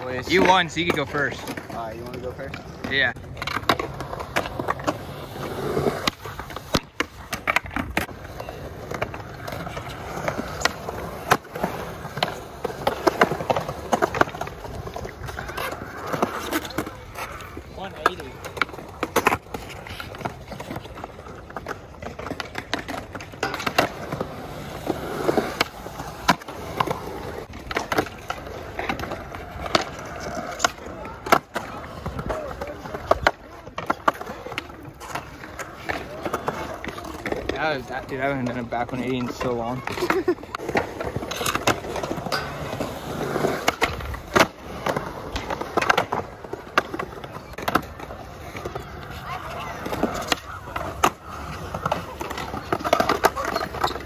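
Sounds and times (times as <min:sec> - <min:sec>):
skateboards clacking on ground: 0:00.0 - 0:54.0
skateboards rolling on concrete: 0:00.0 - 0:54.0.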